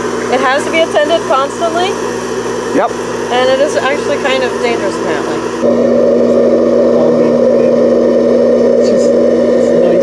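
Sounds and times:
coffee roaster fan hum: 0.0 - 10.0.

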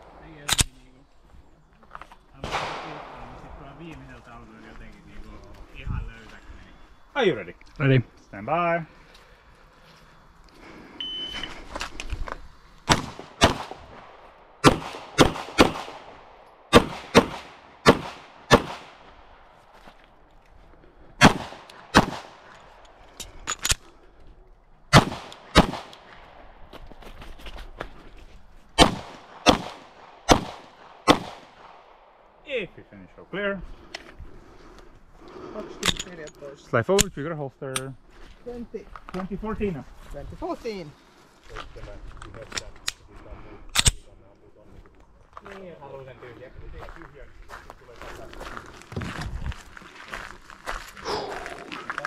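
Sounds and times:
pistol shots echoing: 2.4 - 3.4, 12.9 - 19.4, 21.2 - 22.5, 24.9 - 26.4, 28.8 - 32.2
shot timer beep: 11.0 - 11.5.

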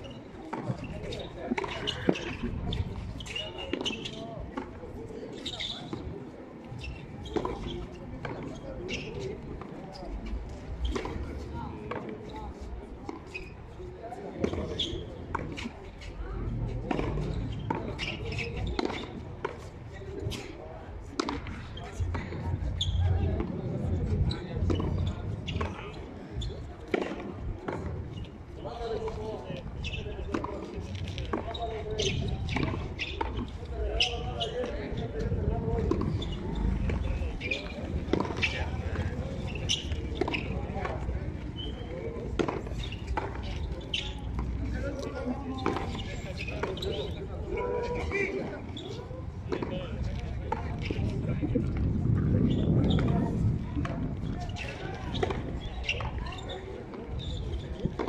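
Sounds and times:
voices in background: 0.0 - 58.0.

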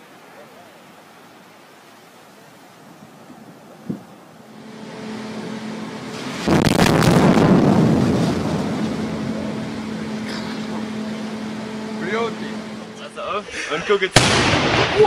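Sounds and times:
steady low hum: 4.2 - 14.5
explosion boom and rumble: 6.4 - 9.6, 14.2 - 15.0.

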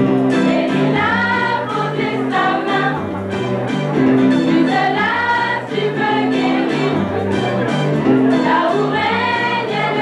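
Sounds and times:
band accompaniment: 0.0 - 10.0
bass line: 0.0 - 10.0
choir singing: 0.4 - 3.0, 4.4 - 7.2, 8.2 - 10.0.

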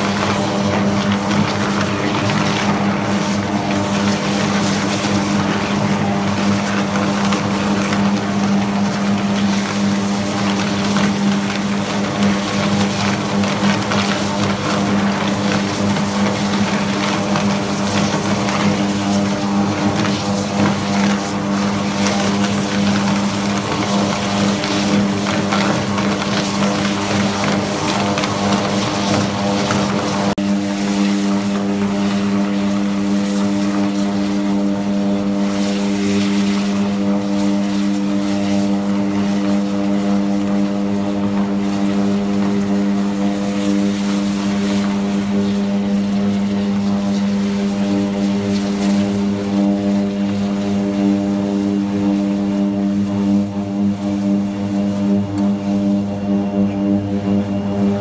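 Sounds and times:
dense electrical crackle: 0.0 - 58.0
loud electrical hum: 0.0 - 58.0.

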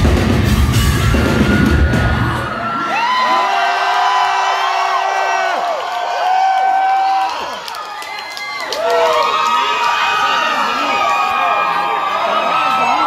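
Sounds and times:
live metal band music: 0.0 - 2.5
crowd cheering and screaming: 0.0 - 13.0.

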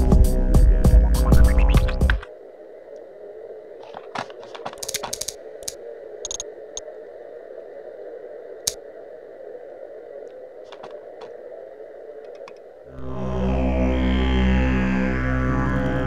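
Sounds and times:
steady hum: 0.0 - 16.0
mouse and keyboard clicks: 4.0 - 6.4, 12.2 - 12.6.

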